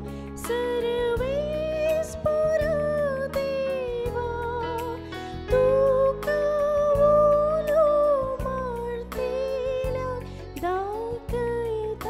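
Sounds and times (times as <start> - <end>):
instrumental accompaniment with beat: 0.0 - 12.0
woman singing a hymn: 0.0 - 12.0.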